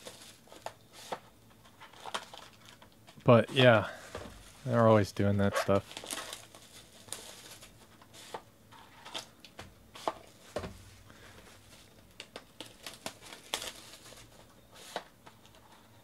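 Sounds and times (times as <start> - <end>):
plastic wrap crinkling: 1.6 - 3.8, 5.4 - 8.4, 11.6 - 15.6.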